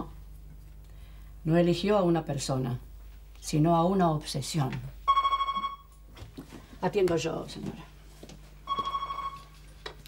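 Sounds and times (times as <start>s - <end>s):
telephone ringing: 5.1s - 5.9s, 8.6s - 9.6s.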